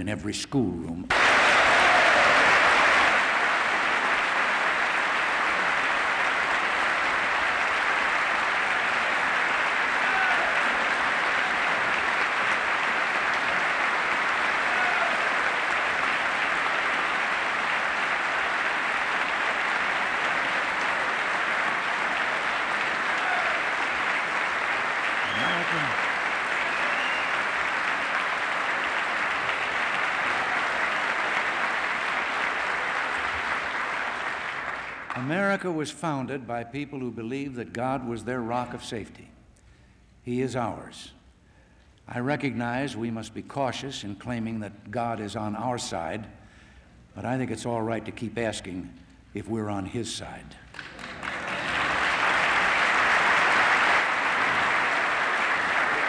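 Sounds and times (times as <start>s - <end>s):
audience applauding: 1.1s - 35.4s, 50.7s - 56.0s.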